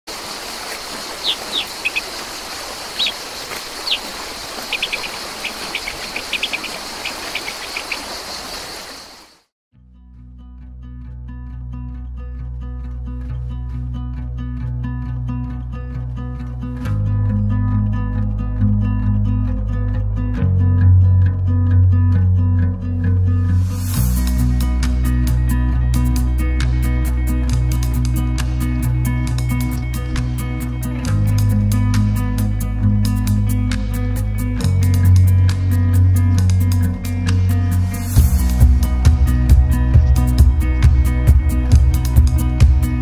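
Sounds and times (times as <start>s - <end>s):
small birds chirping: 0.1s - 9.4s
high insect-like whine: 0.1s - 9.5s
outdoor rushing background: 0.1s - 9.5s
deep bass notes: 9.9s - 43.0s
guitar instrumental music: 10.2s - 43.0s.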